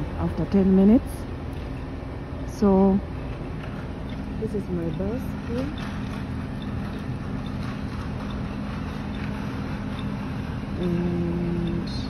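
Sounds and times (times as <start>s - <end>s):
steady hum: 0.0s - 12.0s
traffic rumble: 0.0s - 12.0s
faint high ticks: 10.8s - 12.0s.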